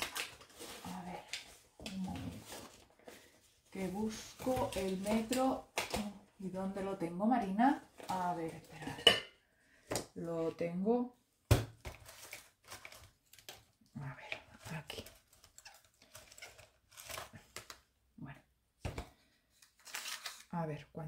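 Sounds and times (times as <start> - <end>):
tape measure handling rustle: 19.8 - 20.5.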